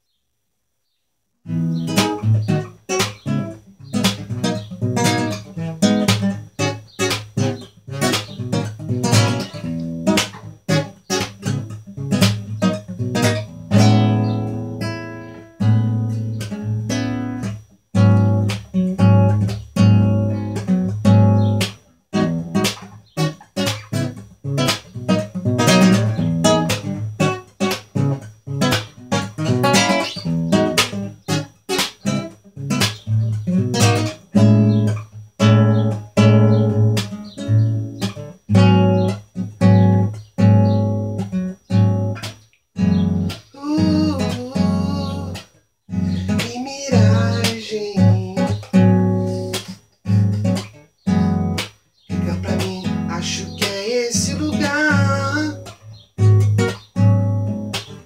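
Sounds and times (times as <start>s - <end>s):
classical guitar playing: 1.4s - 58.0s.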